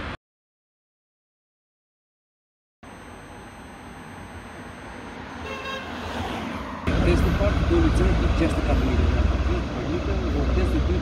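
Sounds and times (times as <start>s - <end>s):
street traffic noise: 3.3s - 11.0s
short car horn toot: 5.4s - 6.0s.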